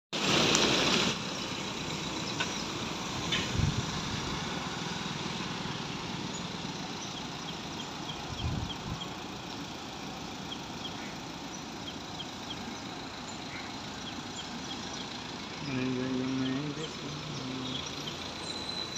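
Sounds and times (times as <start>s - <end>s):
steady traffic hum: 0.2s - 18.9s
vehicles passing: 0.2s - 18.9s.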